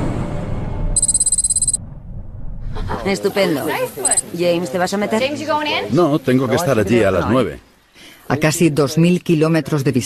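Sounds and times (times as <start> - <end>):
rapidly pulsing electronic beep: 1.0 - 1.8
low rumble: 1.8 - 3.0.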